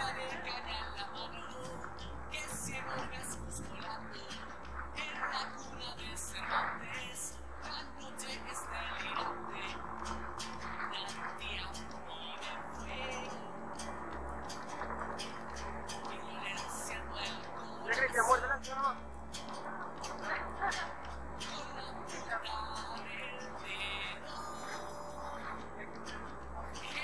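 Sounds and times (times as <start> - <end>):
indistinct voices: 0.0 - 27.0
steady low hum: 0.0 - 27.0.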